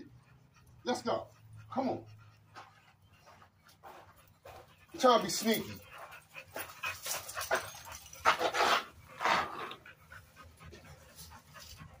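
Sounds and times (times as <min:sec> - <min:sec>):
dog panting hard: 0:00.0 - 0:12.0.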